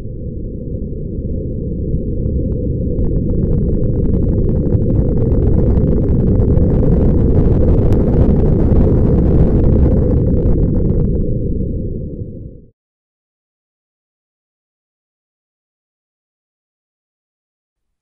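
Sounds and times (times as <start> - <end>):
deep noisy rumble: 0.0 - 12.7
crackling: 2.2 - 11.3.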